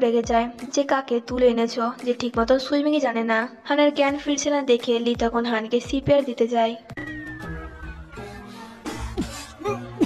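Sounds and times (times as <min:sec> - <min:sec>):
soft background music: 0:00.0 - 0:10.0
thin tone falling in pitch: 0:07.0 - 0:08.6
high-pitched drawn-out vocal: 0:07.8 - 0:10.0.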